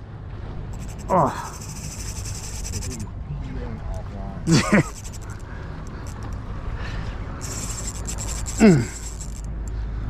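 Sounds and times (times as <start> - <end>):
fishing reel drag clicking: 0.7 - 3.1, 4.6 - 6.5, 7.4 - 9.8.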